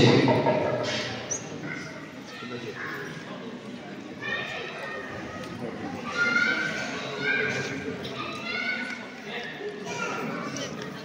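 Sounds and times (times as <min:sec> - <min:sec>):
indistinct voices in echoing hall: 0:00.0 - 0:11.0.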